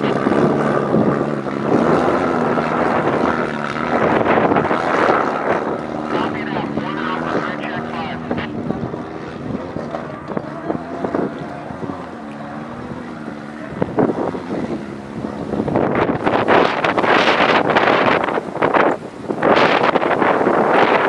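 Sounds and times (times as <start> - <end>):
buggy engine running hard: 0.0 - 21.0.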